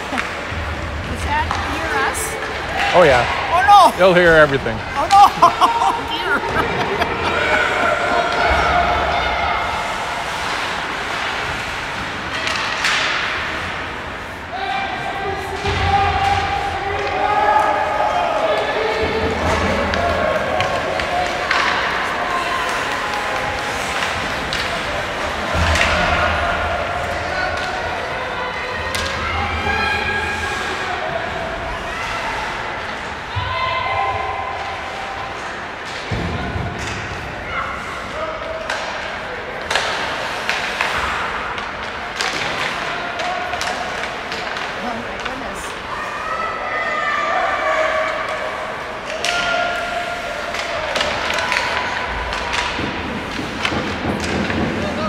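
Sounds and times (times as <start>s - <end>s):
people's voices: 0.0s - 13.1s
puck and sticks knocking: 50.5s - 55.0s.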